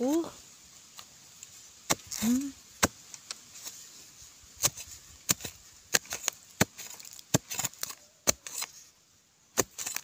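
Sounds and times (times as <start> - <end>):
digging tool chopping hard soil: 1.8 - 3.0, 4.5 - 8.8, 9.5 - 10.0.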